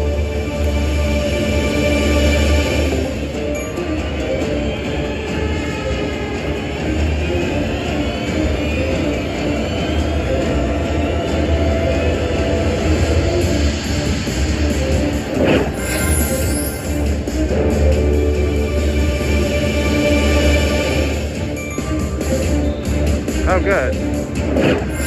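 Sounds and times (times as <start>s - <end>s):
slot machine music: 2.9s - 6.6s, 9.7s - 19.3s, 20.9s - 25.0s.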